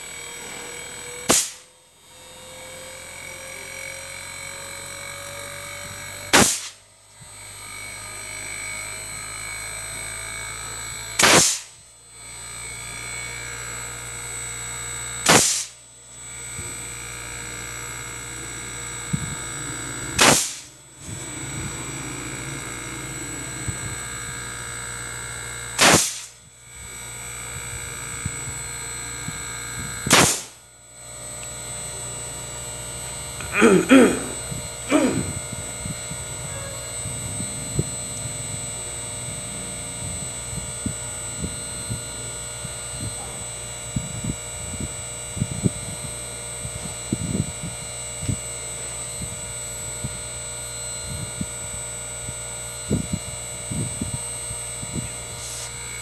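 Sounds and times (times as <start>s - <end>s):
air conditioner hum and whine: 0.0s - 56.0s
sharp loud crack: 1.3s - 1.6s, 6.3s - 6.8s, 11.2s - 11.7s, 15.3s - 15.7s, 19.7s - 21.2s, 25.8s - 26.4s, 30.1s - 30.6s
faint rising tone: 18.1s - 25.3s.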